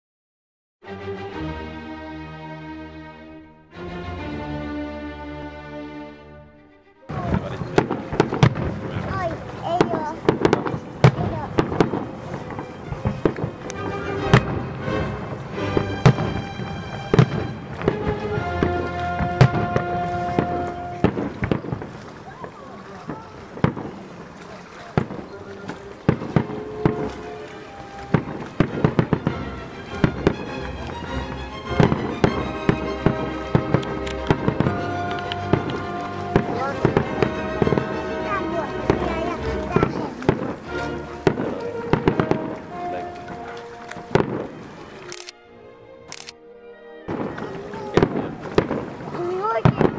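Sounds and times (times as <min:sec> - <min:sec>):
background music: 0:00.8 - 0:21.8, 0:25.7 - 0:49.9
voices: 0:07.1 - 0:14.4, 0:16.6 - 0:29.5, 0:34.1 - 0:45.2, 0:47.1 - 0:49.9
fireworks bursting: 0:07.1 - 0:45.2, 0:47.1 - 0:49.9.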